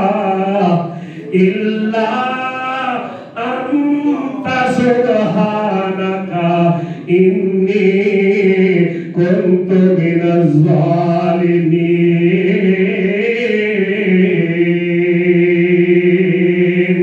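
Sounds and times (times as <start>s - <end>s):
man chanting into a microphone: 0.0s - 17.0s.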